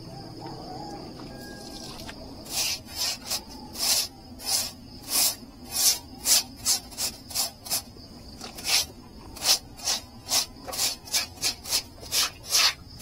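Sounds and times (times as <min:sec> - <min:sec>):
stiff broom scrubbing wet concrete: 0:01.8 - 0:13.0.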